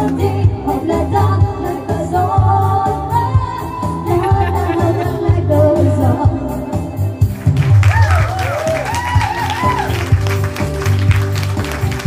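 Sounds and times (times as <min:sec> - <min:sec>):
women singing into microphones: 0:00.0 - 0:06.8
keyboard backing: 0:00.0 - 0:12.0
pulsing bass beat: 0:03.3 - 0:08.4.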